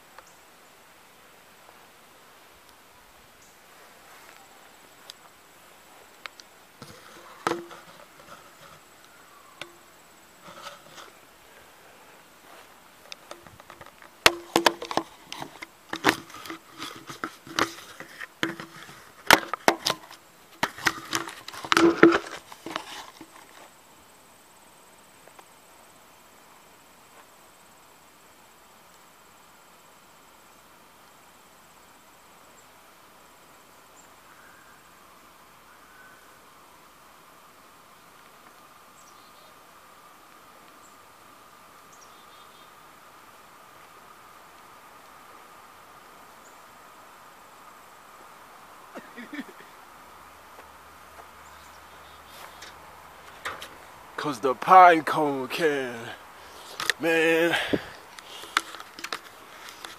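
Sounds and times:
low steady background noise: 0.0s - 59.9s
camera handling clicks and knocks: 13.1s - 23.0s, 56.7s - 57.0s, 58.4s - 59.9s.

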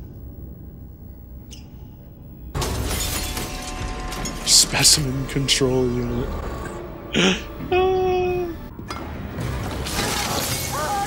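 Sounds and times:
glass shattering: 2.6s - 5.6s, 8.9s - 11.0s.

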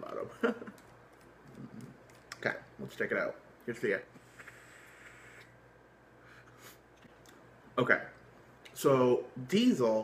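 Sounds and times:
e-cigarette drag hiss: 4.2s - 5.6s.

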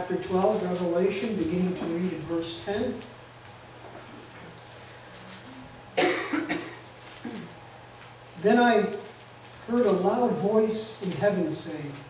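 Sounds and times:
man coughing into microphone: 6.0s - 7.5s.

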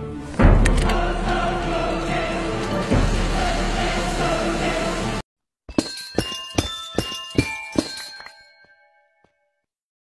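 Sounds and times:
toy keyboard bell-like notes: 5.7s - 9.2s.

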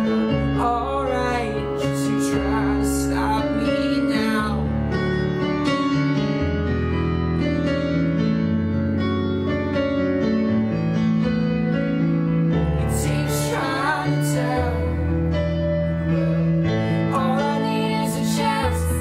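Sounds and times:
keyboard piano chords: 0.0s - 19.0s
person singing: 0.4s - 4.6s, 12.8s - 15.3s, 15.9s - 19.0s.

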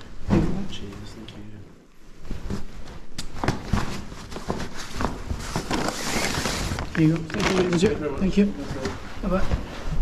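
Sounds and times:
fabric rustling: 2.0s - 10.0s.

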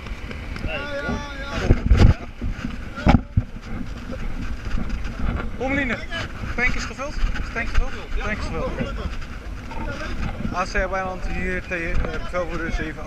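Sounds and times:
thumps on microphone: 0.0s - 6.4s
voices: 0.6s - 13.0s.

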